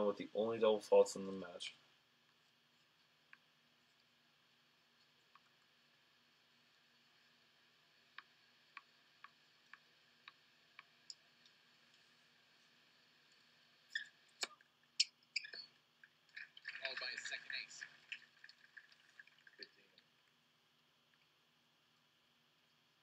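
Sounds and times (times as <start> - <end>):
muffled voice: 0.0 - 1.8, 16.8 - 17.8.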